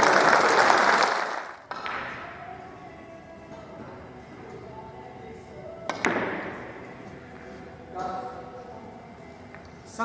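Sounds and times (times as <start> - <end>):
cue tip striking ball: 1.7 - 2.3, 5.9 - 6.8.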